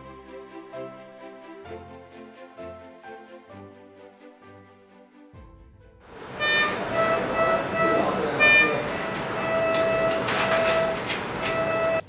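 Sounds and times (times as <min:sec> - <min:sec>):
multi-note alarm tone: 0:06.1 - 0:12.0
patient monitor beeps: 0:06.2 - 0:12.0.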